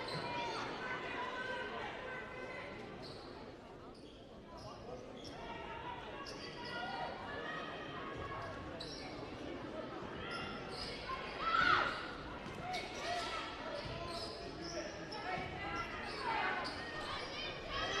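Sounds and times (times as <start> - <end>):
sneakers squeaking: 3.0 - 3.3, 10.2 - 11.0, 11.6 - 18.0.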